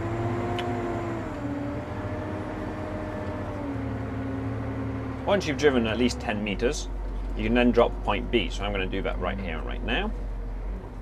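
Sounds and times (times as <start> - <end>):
tractor engine humming: 0.0 - 11.0.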